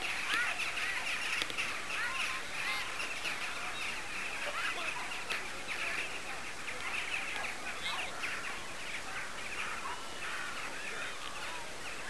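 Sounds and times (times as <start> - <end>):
flock of birds chirping: 0.0 - 12.0.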